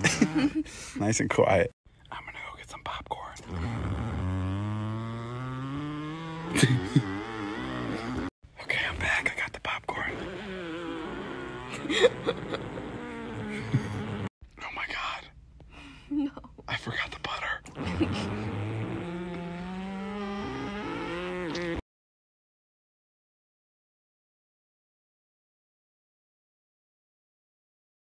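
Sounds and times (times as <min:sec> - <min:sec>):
man making vocal sounds: 0:06.4 - 0:07.4.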